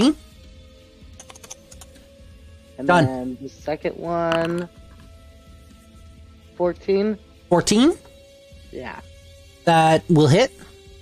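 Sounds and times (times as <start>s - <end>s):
computer keyboard typing: 1.2s - 2.0s
person speaking: 2.8s - 4.7s.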